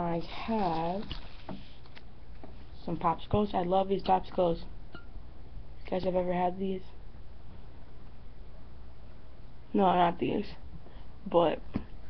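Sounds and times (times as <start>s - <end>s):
person speaking: 0.0s - 1.2s, 2.7s - 4.8s, 5.8s - 7.0s, 9.7s - 10.6s
low background hum: 0.0s - 12.0s.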